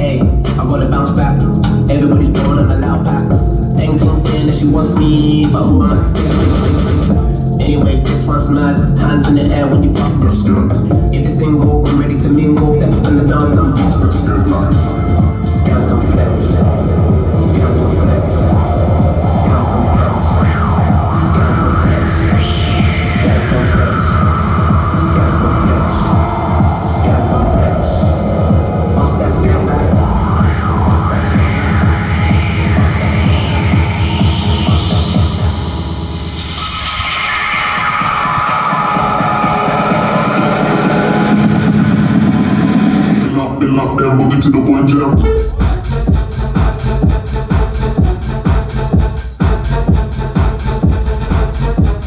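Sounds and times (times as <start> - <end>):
heavy bass beat: 0.0 - 52.0
loud electronic dance music: 0.0 - 52.0
sweeping filtered sounds: 1.2 - 48.9.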